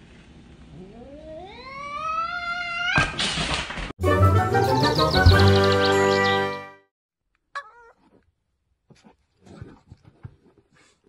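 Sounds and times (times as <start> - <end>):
cat yowling: 0.8 - 3.1, 7.6 - 8.0.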